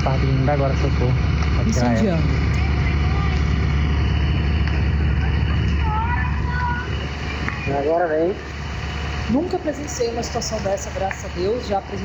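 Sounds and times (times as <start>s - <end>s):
loud low rumble: 0.0s - 12.0s
faint voices: 0.9s - 12.0s.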